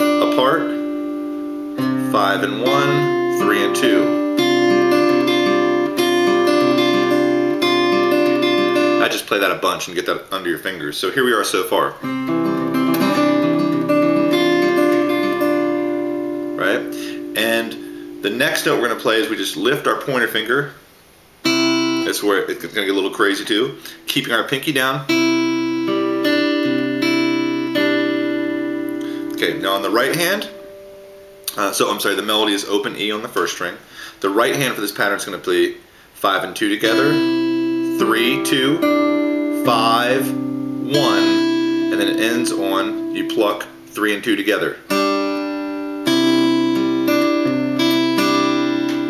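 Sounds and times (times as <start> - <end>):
acoustic guitar fingerpicked slowly: 0.0 - 9.1, 12.0 - 19.4, 21.4 - 22.1, 25.1 - 31.6, 36.8 - 44.0, 44.9 - 49.0.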